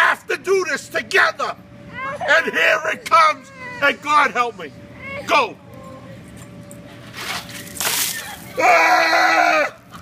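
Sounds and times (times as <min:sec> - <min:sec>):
man screaming: 0:08.6 - 0:09.8.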